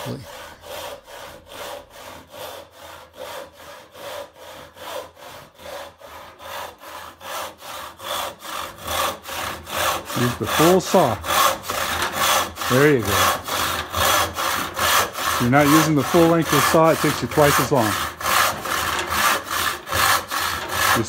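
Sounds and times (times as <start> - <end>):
handsaw cutting wood: 0.0 - 21.0.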